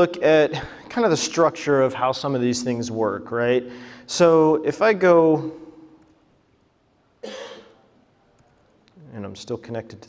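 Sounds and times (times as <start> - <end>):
person coughing: 7.2 - 7.8.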